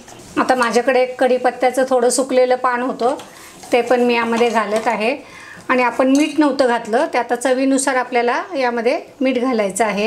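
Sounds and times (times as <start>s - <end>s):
woman speaking: 0.4s - 10.0s.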